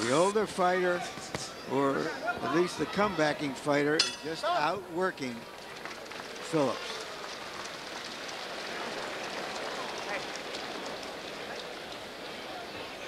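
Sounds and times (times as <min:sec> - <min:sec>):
crowd voices: 0:00.0 - 0:13.0
crowd applause: 0:04.4 - 0:13.0.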